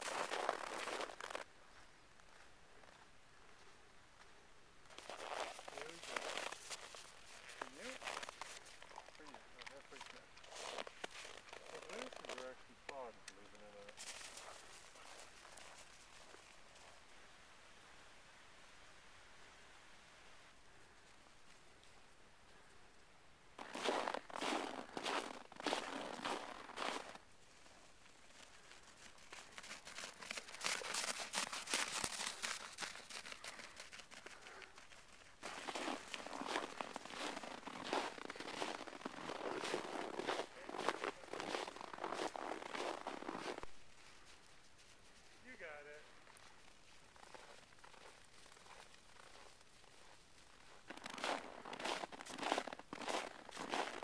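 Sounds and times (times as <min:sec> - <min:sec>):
footsteps crunching in snow: 0:00.0 - 0:12.5, 0:13.6 - 0:17.0, 0:23.6 - 0:54.0.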